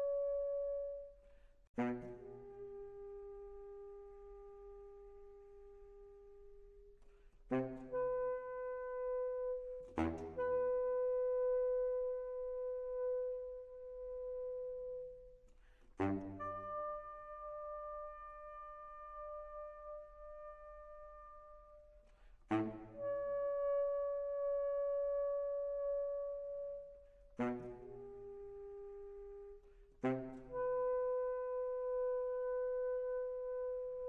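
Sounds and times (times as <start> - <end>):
baritone saxophone notes: 1.8 - 6.7, 7.5 - 15.4, 16.0 - 34.0.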